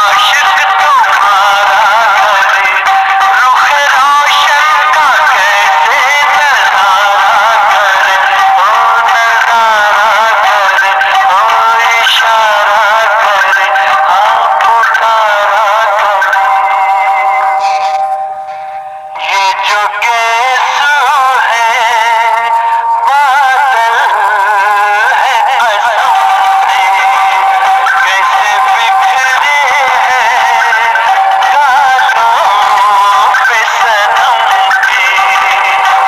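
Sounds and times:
man singing: 0:00.0 - 0:36.0.

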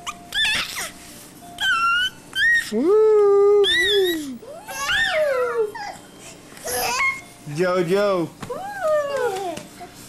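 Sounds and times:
baby squealing: 0:00.0 - 0:01.0, 0:01.6 - 0:02.8, 0:03.6 - 0:06.0, 0:06.6 - 0:07.3.

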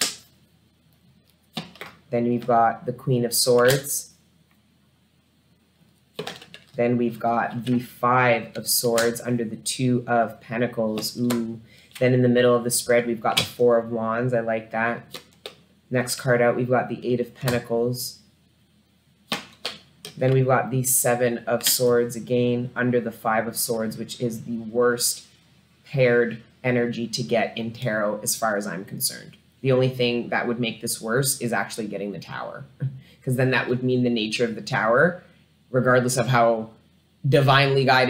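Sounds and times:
cards snapping down: 0:19.3 - 0:20.2.

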